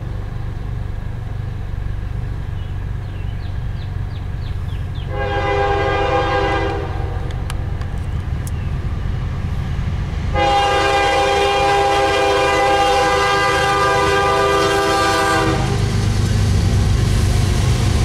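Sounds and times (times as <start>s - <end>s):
locomotive low rumble: 0.0s - 18.0s
locomotive air horn blast: 5.1s - 7.3s, 10.3s - 15.9s.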